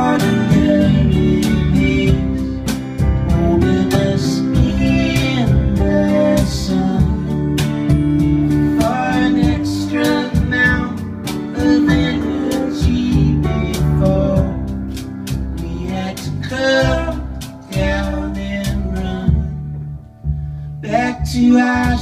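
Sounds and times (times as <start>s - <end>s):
bass notes: 0.0s - 22.0s.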